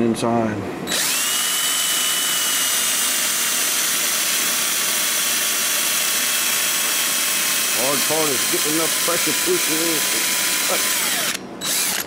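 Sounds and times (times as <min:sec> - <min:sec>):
cordless drill whining: 0:00.9 - 0:12.0.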